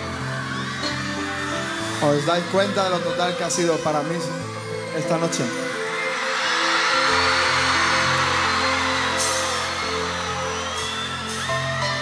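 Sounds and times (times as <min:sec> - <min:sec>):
crowd cheering and whistling: 0:00.0 - 0:04.7, 0:05.3 - 0:12.0.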